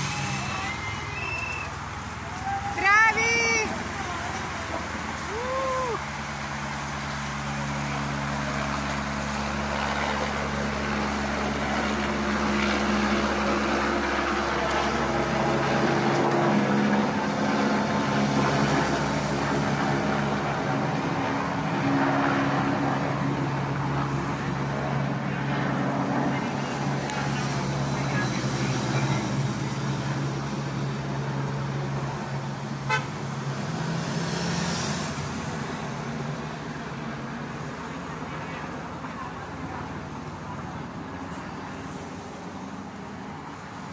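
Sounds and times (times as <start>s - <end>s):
car engines droning: 0.0s - 43.9s
car horns tooting: 32.9s - 33.2s.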